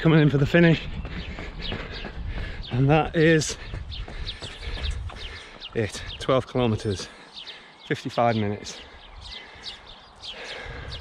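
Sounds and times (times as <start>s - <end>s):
wind rumble on microphone: 0.0s - 6.2s, 10.6s - 11.0s
small birds chirping: 0.0s - 11.0s.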